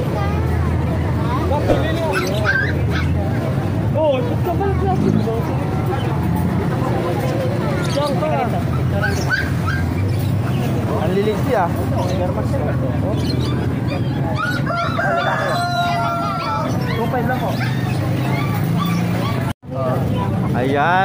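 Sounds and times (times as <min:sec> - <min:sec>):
puppies whimpering and yipping: 0:01.7 - 0:03.2, 0:08.8 - 0:10.4, 0:13.2 - 0:19.6.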